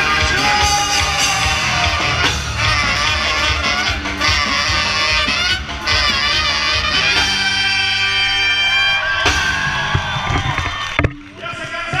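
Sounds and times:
brass band with trumpets: 0.0 - 10.6.

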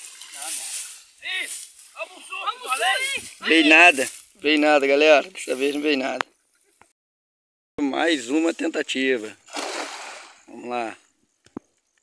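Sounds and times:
net hauled through grass rustling: 0.0 - 4.7
voices calling and talking: 0.2 - 6.9.

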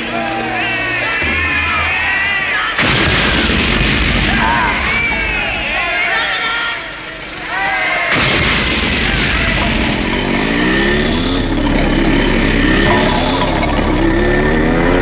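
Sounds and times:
loud blast: 2.8 - 6.3, 8.0 - 15.0
continuing rumble: 6.9 - 15.0
vehicle engine revving: 6.9 - 15.0.

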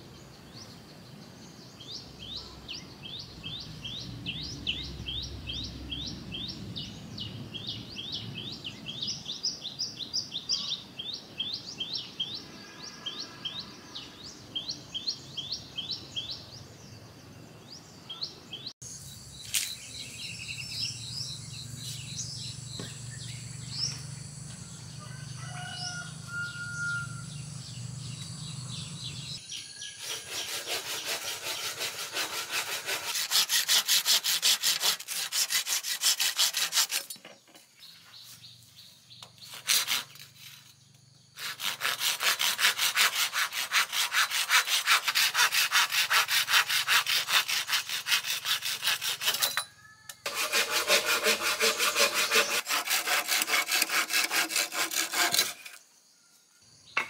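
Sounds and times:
bird chirps: 0.2 - 31.8
hand saw cutting bamboo: 30.0 - 37.2, 39.4 - 40.7, 41.4 - 49.6, 50.2 - 55.8.

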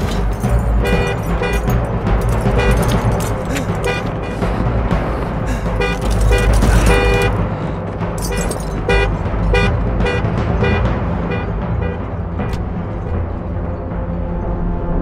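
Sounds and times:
film score: 0.0 - 15.0
car horn honking in short pulses: 5.8 - 7.4, 8.4 - 12.0.

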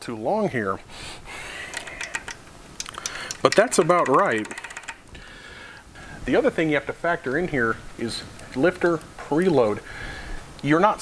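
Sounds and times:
small metal parts clicking: 1.7 - 5.1.

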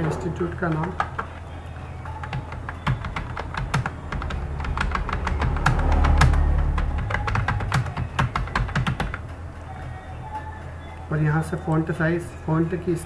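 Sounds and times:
computer keyboard typing: 0.6 - 9.2
low hum: 1.4 - 11.0.

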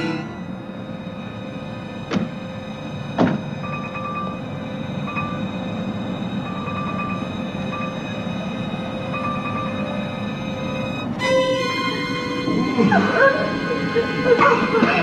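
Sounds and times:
car door shutting: 3.2 - 3.6.

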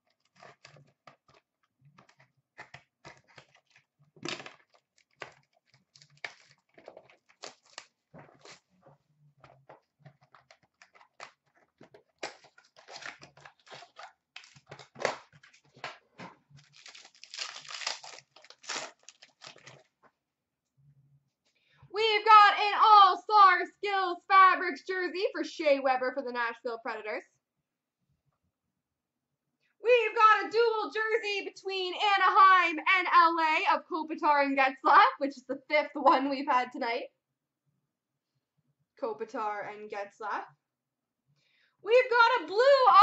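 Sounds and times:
wrappers tearing and crinkling: 0.0 - 1.4, 2.0 - 8.8, 9.4 - 16.0, 16.6 - 19.9
cards being handled: 0.1 - 8.7, 9.4 - 19.9.

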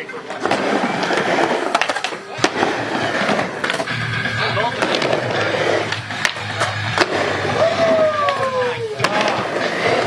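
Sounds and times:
skateboard wheels rolling on wood: 0.0 - 10.0
skateboard clacking on wood: 1.0 - 2.6.

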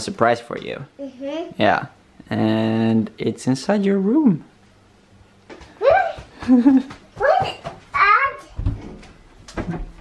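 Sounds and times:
child laughing: 5.8 - 7.7.

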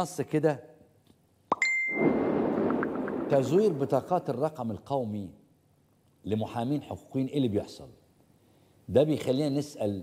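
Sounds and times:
bright ding: 1.5 - 2.2
rising swoosh: 1.8 - 4.4
steady rushing noise: 2.0 - 4.6.

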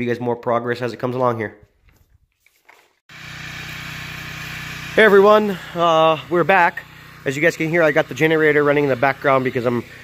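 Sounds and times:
generator engine humming: 3.1 - 10.0.

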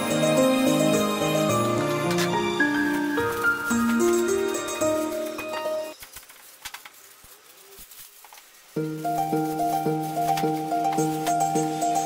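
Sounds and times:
plastic bag crinkling: 2.8 - 12.0.

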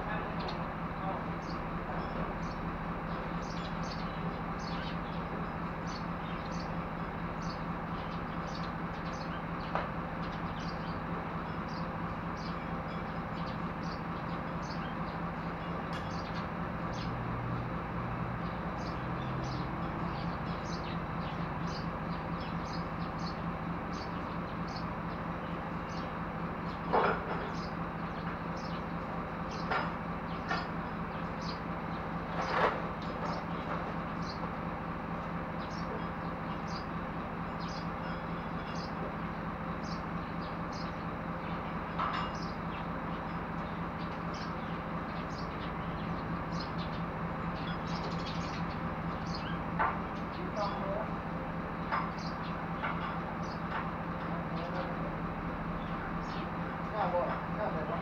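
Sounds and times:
truck engine idling: 0.0 - 58.0
metal clanks and knocks: 26.9 - 27.6, 42.0 - 42.5.

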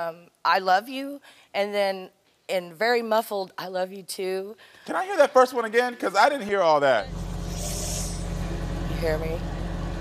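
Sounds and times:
muffled low rumble and hum: 7.0 - 10.0
burst of hiss: 7.4 - 8.3.

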